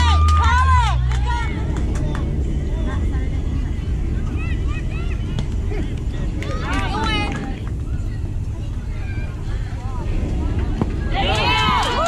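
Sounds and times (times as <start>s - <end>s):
wind on microphone: 1.1s - 12.0s
distant shouts: 4.2s - 12.0s.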